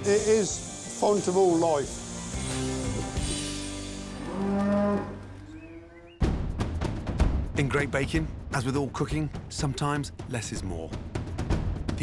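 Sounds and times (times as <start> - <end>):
cow mooing: 4.1 - 6.2.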